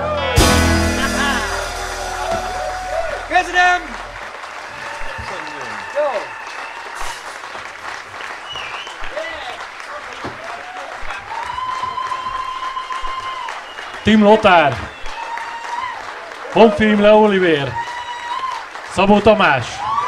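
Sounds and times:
band's low note: 0.0 - 4.2
audience applauding and cheering: 0.0 - 20.0.

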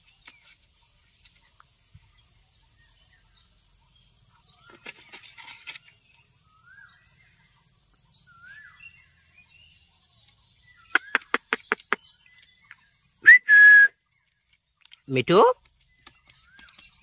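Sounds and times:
sharp clicks: 10.9 - 12.5
loud whistle: 13.2 - 14.0.

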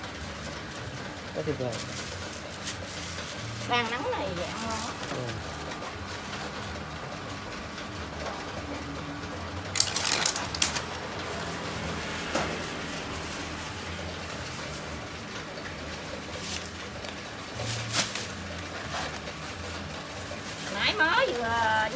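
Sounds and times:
foam box clicks and creaks: 9.7 - 10.9.

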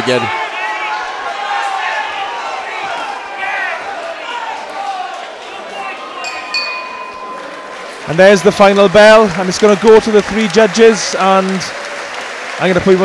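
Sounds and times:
crowd shouting and cheering: 0.0 - 13.0
ringside bell ringing: 6.2 - 9.2.

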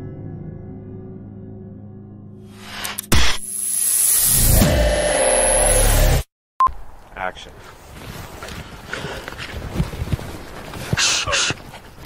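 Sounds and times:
footsteps in undergrowth: 6.9 - 12.0.

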